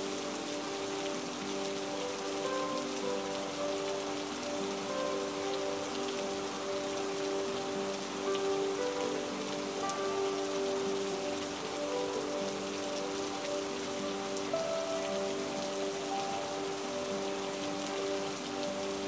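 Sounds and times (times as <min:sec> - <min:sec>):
soft slow music: 0:00.0 - 0:19.0
steady rain falling: 0:00.0 - 0:19.0.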